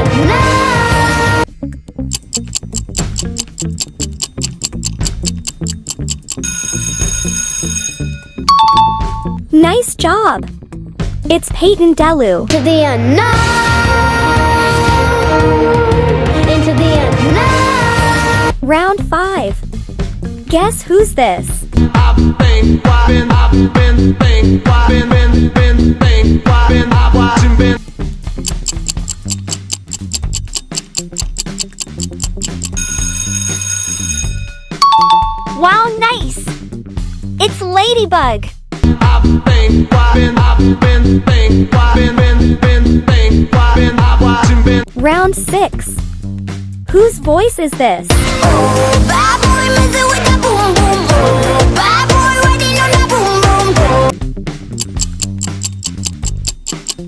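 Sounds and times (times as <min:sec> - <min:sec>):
looping bass line: 0:01.6 - 0:09.8, 0:28.4 - 0:32.9, 0:37.4 - 0:45.6, 0:48.4 - 0:57.0
low music beat: 0:01.7 - 0:06.4, 0:28.4 - 0:32.8
clock ticking: 0:02.1 - 0:07.3, 0:28.4 - 0:33.2, 0:54.7 - 0:57.0
alarm bell ringing: 0:05.3 - 0:09.4, 0:28.8 - 0:35.6.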